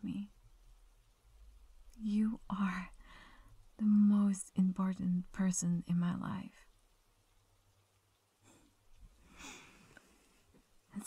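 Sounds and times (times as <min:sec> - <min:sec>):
woman talking softly: 0:00.0 - 0:00.3, 0:02.0 - 0:02.9, 0:03.8 - 0:06.7.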